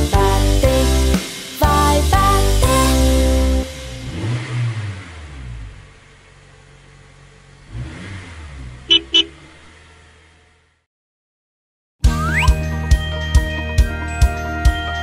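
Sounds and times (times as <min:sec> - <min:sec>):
cartoon bus engine: 0:00.0 - 0:10.9, 0:12.0 - 0:12.7
bus horn honks: 0:08.9 - 0:09.4.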